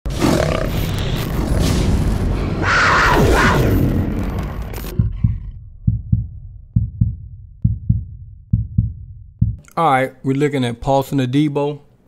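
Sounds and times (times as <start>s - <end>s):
low rumble: 3.2s - 9.6s.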